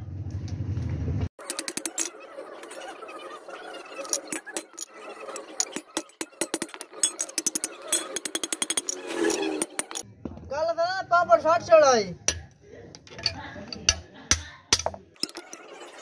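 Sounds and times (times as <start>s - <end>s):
hammer striking metal punch: 12.3s - 15.4s.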